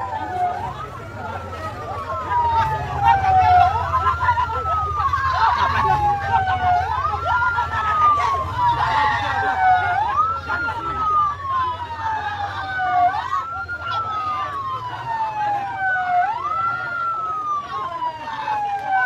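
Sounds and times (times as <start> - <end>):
ambulance siren wailing: 0.0 - 19.0
crowd voices: 0.0 - 19.0.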